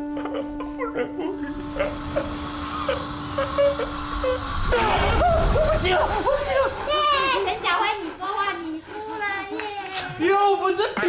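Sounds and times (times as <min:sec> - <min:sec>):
man humming strained: 0:00.0 - 0:05.6
steam hiss sound effect: 0:01.3 - 0:09.3.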